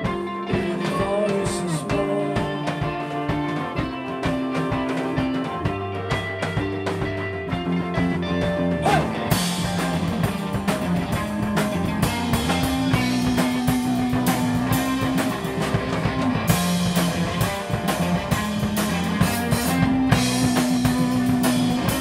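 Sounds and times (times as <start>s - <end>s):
bass guitar: 0.0s - 22.0s
drum kit: 0.0s - 22.0s
electric guitars: 0.0s - 22.0s.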